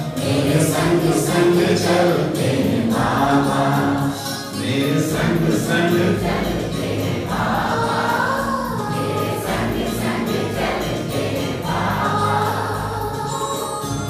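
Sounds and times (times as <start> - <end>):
group of voices singing: 0.0 - 14.0
musical accompaniment: 0.0 - 14.0.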